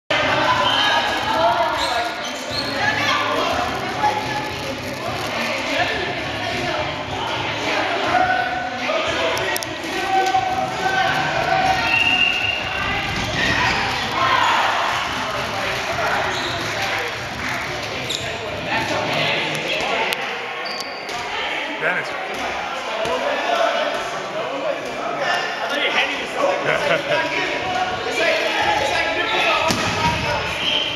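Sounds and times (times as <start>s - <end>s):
people talking in echoing gym: 0.1s - 30.9s
balls bouncing on gym floor: 29.6s - 30.4s.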